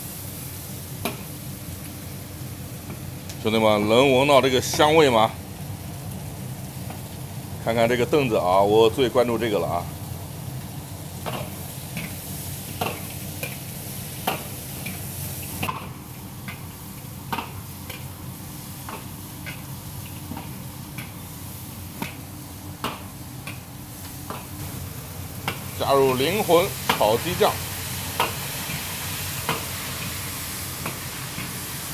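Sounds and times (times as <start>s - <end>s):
meat sizzling in hot oil: 0.0s - 31.9s.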